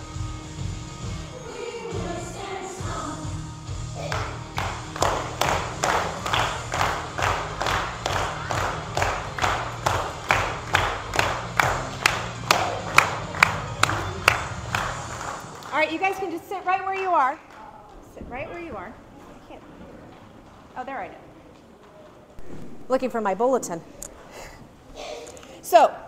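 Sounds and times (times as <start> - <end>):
quiet music: 0.0 - 16.2
children singing: 1.2 - 6.4
children clapping in time: 4.0 - 16.1.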